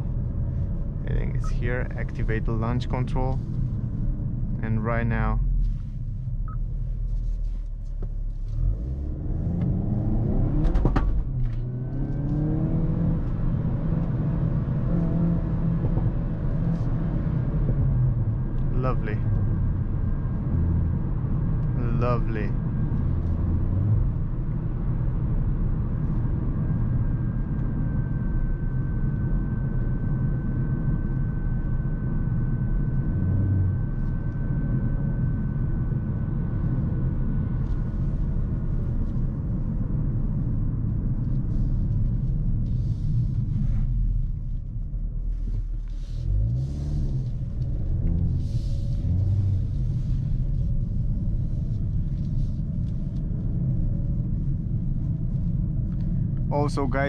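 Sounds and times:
road noise: 0.0s - 57.0s
car engine accelerating hard: 8.4s - 18.7s, 45.3s - 54.8s.

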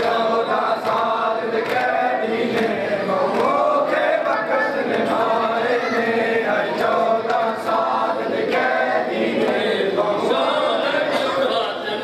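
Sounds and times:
men chanting together: 0.0s - 12.0s
hands slapping chests: 1.6s - 3.6s.

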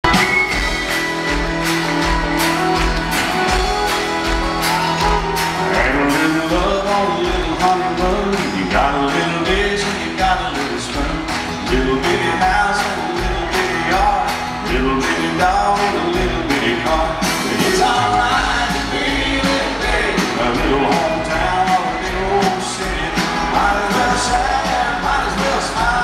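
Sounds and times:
country band playing: 0.0s - 26.0s.

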